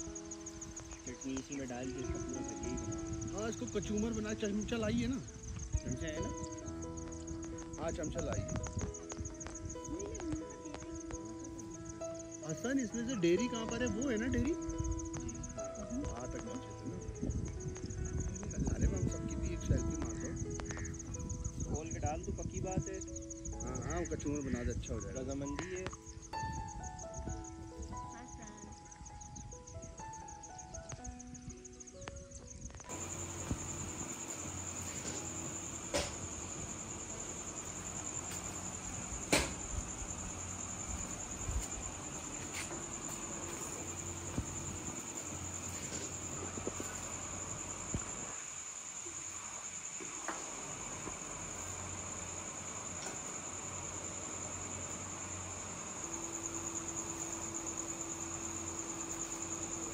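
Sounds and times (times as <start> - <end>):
background music: 0.0 - 33.0
crickets chirping: 0.0 - 59.9.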